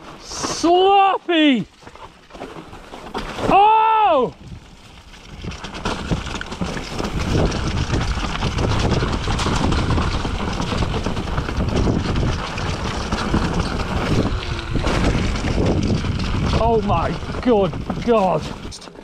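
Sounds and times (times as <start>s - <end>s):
bike knocking and rattling: 0.0s - 19.0s
bike tyres rolling: 0.0s - 19.0s
wind buffeting microphone: 4.2s - 19.0s.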